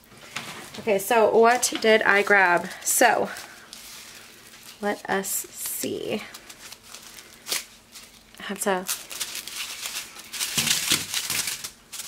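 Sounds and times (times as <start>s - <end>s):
plastic bags crinkling and rattling: 0.2s - 12.0s.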